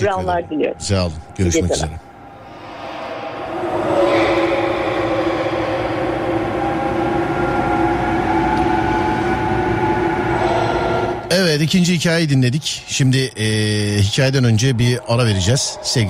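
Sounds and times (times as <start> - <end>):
dark ambient drone: 0.0 - 16.0.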